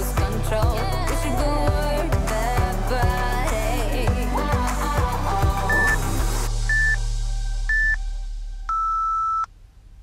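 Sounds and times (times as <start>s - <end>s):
backing music: 0.0s - 8.7s
interval timer beeps: 5.7s - 6.0s, 6.7s - 7.0s, 7.7s - 8.0s, 8.7s - 9.5s.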